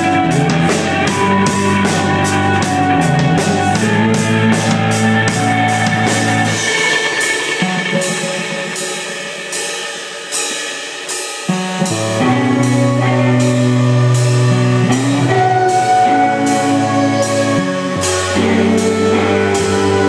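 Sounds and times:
indie rock band playing: 0.0s - 20.0s
sharp drum accents: 0.1s - 20.0s
ringing cymbals: 5.5s - 12.0s.

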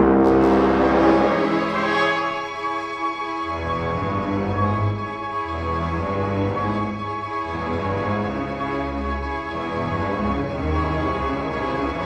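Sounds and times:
orchestra playing sustained chords: 0.0s - 5.3s.

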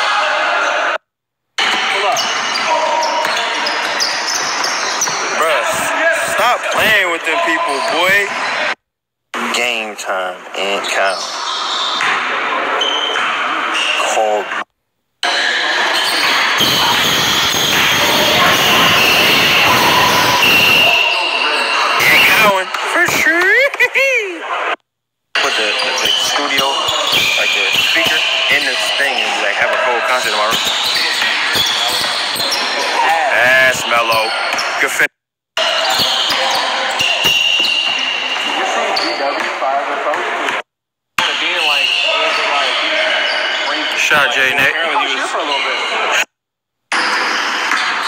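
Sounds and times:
players shouting and chattering: 0.0s - 24.8s, 25.4s - 46.3s, 46.9s - 48.0s.

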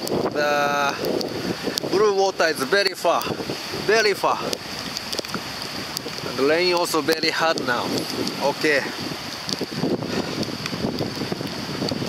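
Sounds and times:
heavy rain falling: 0.0s - 12.0s
wind gusting over microphone: 0.0s - 12.0s.

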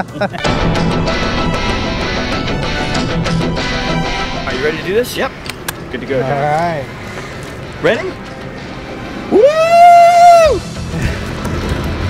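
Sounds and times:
low rumble: 0.4s - 9.3s
man yelling woo: 9.3s - 10.6s.

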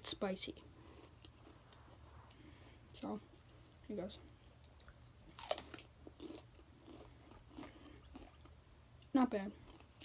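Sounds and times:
crunching chews: 4.7s - 8.6s.

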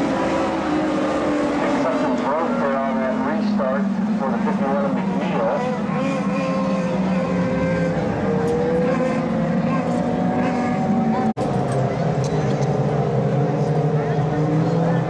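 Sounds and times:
race car engines: 0.0s - 15.0s.

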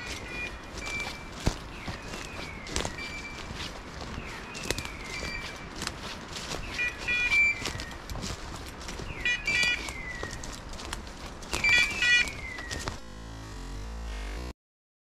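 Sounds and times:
footsteps on dry leaves: 0.0s - 13.4s
electronic beeper collar call: 6.6s - 7.8s, 9.1s - 10.4s, 11.5s - 12.9s.

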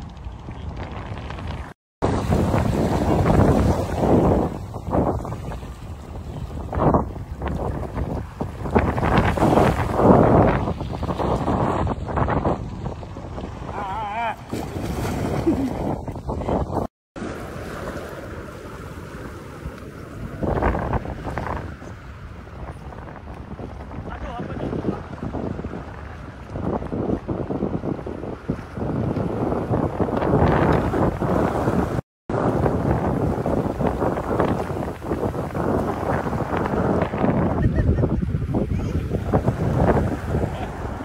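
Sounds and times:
wind buffeting microphone: 0.0s - 41.0s
water sloshing in shallow surf: 0.2s - 41.0s.

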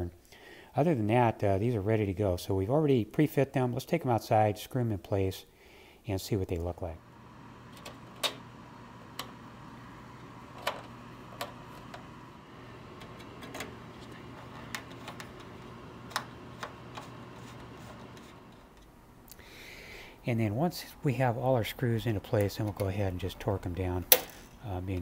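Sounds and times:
faint steady hum: 4.3s - 25.0s.

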